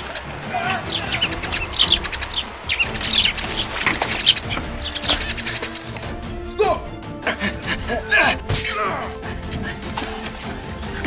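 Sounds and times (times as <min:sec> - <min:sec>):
small birds chirping: 0:00.0 - 0:06.3.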